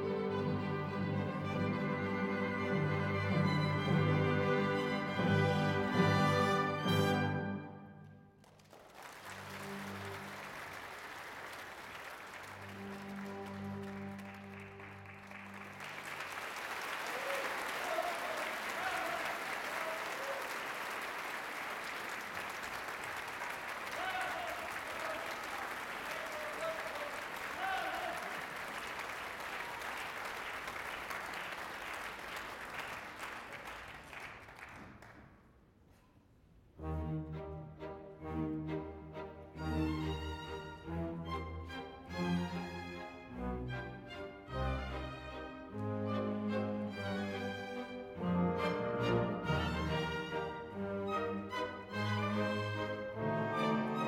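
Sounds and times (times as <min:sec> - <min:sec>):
orchestra holding closing notes: 0:00.0 - 0:08.1, 0:09.2 - 0:10.8, 0:12.4 - 0:21.2, 0:36.8 - 0:54.0
audience applauding: 0:08.4 - 0:35.4.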